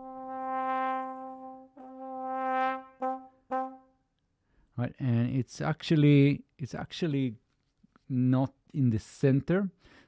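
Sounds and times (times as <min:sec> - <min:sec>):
trombone notes: 0:00.0 - 0:04.0.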